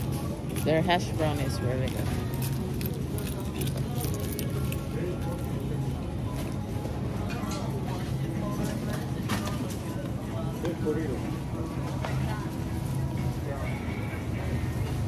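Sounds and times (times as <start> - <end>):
background store music: 0.0 - 15.0
indistinct voices of shoppers: 0.0 - 15.0
low hum of freezer cases: 0.0 - 15.0.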